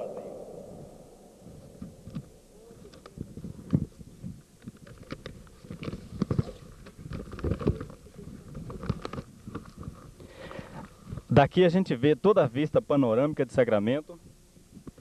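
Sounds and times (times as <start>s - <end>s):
low rumbling: 0.0s - 4.6s.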